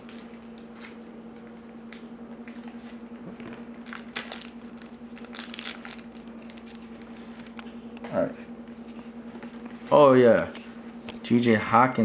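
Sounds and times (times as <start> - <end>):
trading cards crinkling and rustling: 0.0 - 7.8
steady low hum: 0.0 - 12.0.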